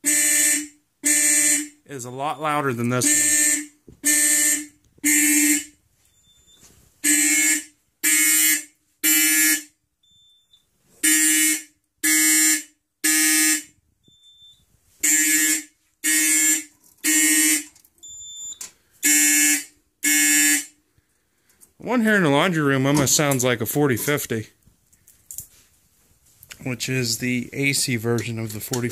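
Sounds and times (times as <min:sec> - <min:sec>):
fire alarm horns blasting: 0:00.0 - 0:20.8.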